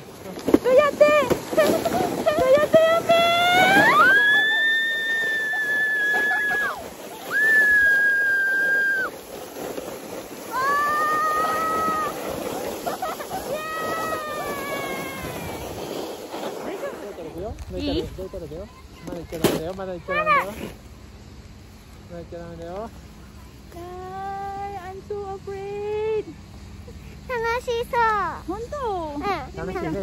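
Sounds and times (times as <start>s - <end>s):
sled hissing over snow: 0.0s - 30.0s
child whining cry: 10.5s - 12.2s, 13.5s - 15.7s.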